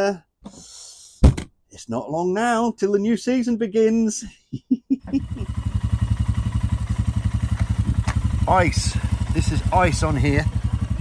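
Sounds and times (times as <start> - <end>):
motorcycle engine idling: 5.1 - 11.0.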